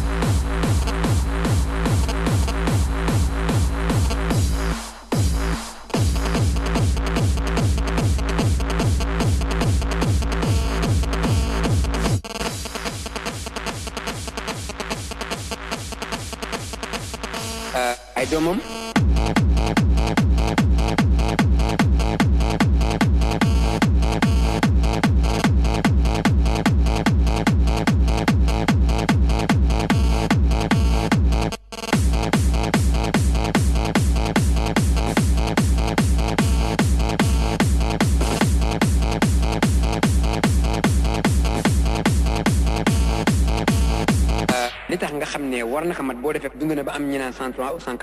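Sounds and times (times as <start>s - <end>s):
techno with kick drum beat: 0.0s - 47.3s.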